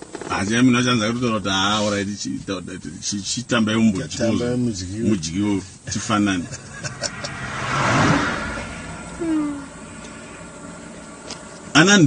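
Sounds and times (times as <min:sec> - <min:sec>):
vehicle passing by: 0:06.4 - 0:12.0.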